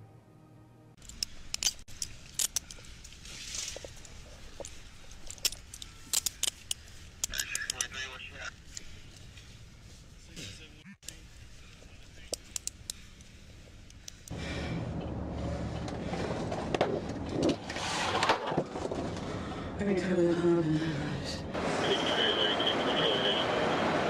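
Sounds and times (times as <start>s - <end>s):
handcuffs ratcheting closed: 1.0s - 3.0s, 4.6s - 7.9s, 12.3s - 14.3s
car engine rumble: 1.0s - 24.0s.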